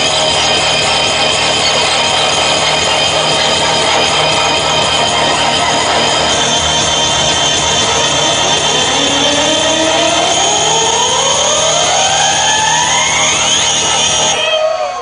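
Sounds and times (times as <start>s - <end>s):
loud live electronic music: 0.0s - 15.0s
synthesizer tone gliding upward: 0.0s - 15.0s.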